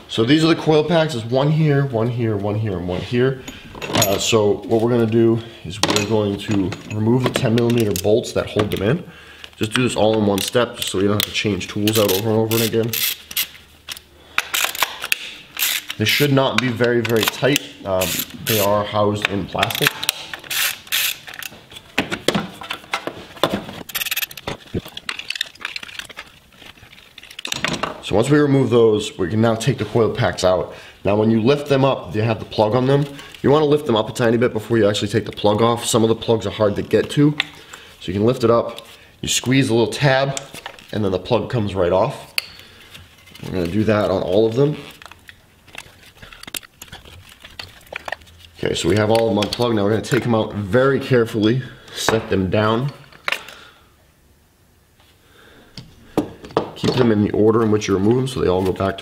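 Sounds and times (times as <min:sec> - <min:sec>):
hand ratchet clicking: 0:10.4 - 0:18.8, 0:19.6 - 0:21.5, 0:23.9 - 0:26.2.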